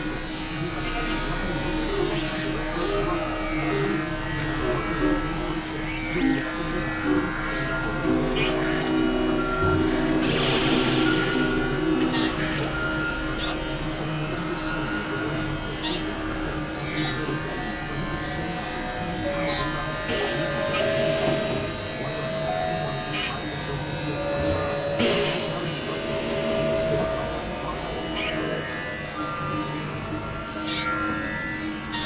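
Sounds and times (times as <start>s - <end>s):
synthesizer drones: 0.0s - 32.0s.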